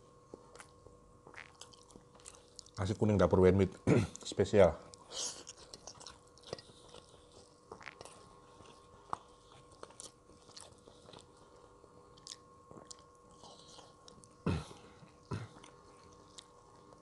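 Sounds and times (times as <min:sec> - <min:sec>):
faint chewing: 0:00.2 - 0:02.8, 0:04.1 - 0:17.0.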